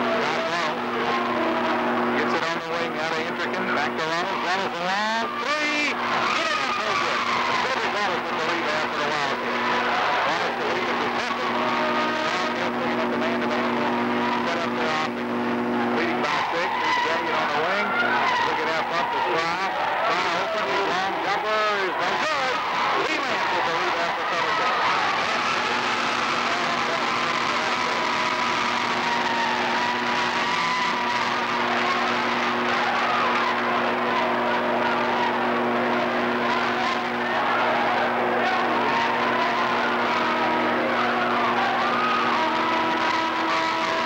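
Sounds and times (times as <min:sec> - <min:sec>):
crowd voices: 0:00.0 - 0:44.0
low hum: 0:10.6 - 0:16.1.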